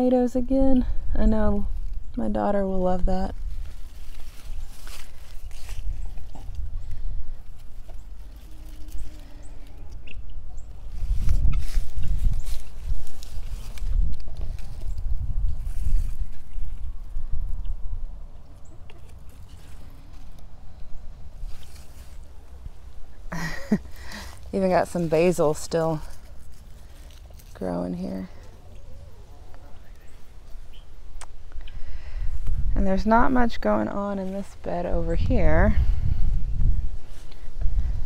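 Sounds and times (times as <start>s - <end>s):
rustling of plant foliage: 0.0s - 38.0s
wind on microphone: 9.2s - 18.4s, 30.5s - 38.0s.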